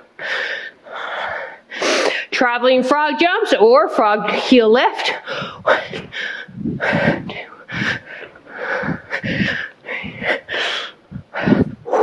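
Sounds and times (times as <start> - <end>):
woman breathing hard: 0.0 - 2.3, 5.2 - 12.0
woman counting: 2.4 - 6.1.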